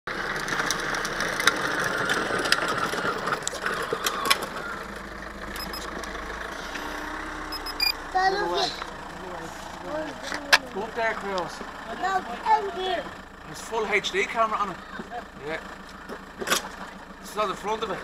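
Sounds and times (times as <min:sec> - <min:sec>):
toy motorbike grinding whir: 0:00.3 - 0:05.0
short high beeps: 0:05.6 - 0:05.9, 0:07.5 - 0:08.0.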